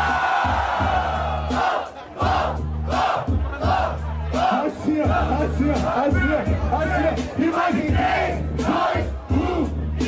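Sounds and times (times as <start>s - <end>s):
crowd shouting and cheering: 0.0s - 10.0s
hip-hop beat with bass line: 0.0s - 10.0s.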